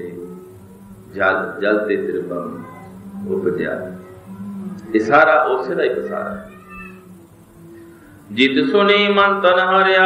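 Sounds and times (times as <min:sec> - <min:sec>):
man chanting: 0:00.0 - 0:10.0
steady low hum: 0:00.0 - 0:10.0.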